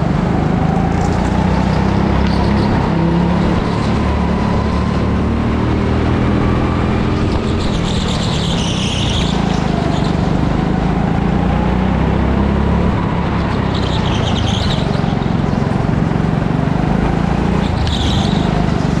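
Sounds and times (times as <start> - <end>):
go-kart engine running hard: 0.0 - 19.0
high-pitched squeals: 6.4 - 10.4, 12.9 - 15.7, 17.5 - 18.8.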